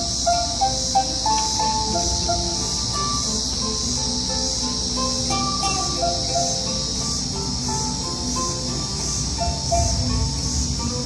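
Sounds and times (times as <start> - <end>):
cicadas droning: 0.0 - 11.0
plucked string notes: 0.0 - 11.0.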